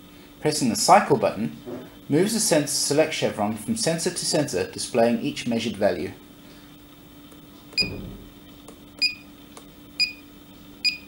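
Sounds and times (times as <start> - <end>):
soft thump: 7.8 - 8.4.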